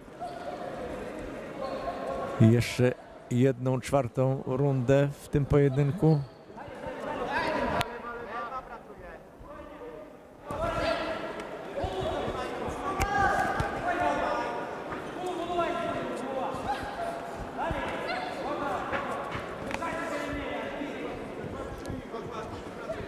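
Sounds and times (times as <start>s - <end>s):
footwork on ring canvas: 10.5s - 23.0s.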